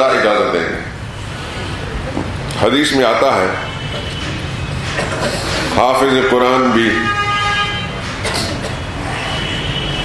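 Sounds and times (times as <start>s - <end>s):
vehicle horn: 6.8s - 8.0s, 9.2s - 10.0s.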